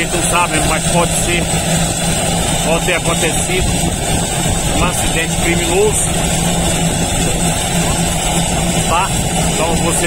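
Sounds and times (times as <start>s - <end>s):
engine hum with high whine: 0.0s - 10.0s
wind rumble on microphone: 0.0s - 10.0s.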